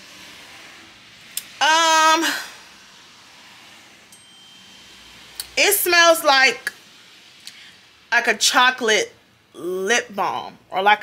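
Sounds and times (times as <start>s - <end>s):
faint steady hiss: 0.0s - 11.0s
thin faint high tone: 4.1s - 5.3s.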